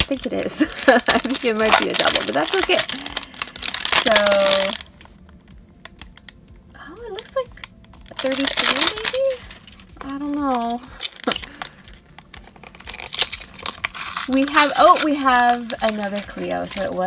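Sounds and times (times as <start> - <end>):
cellophane wrapper crinkling: 0.0 - 6.4, 7.0 - 17.0.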